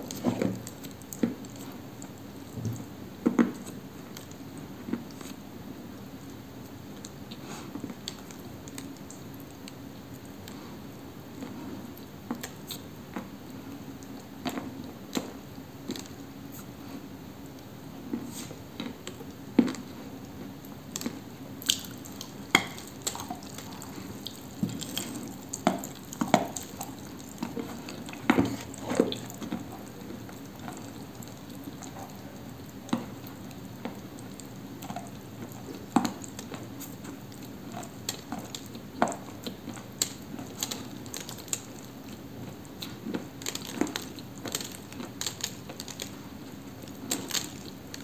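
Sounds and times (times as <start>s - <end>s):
biting and chewing clay: 18.2s - 48.0s.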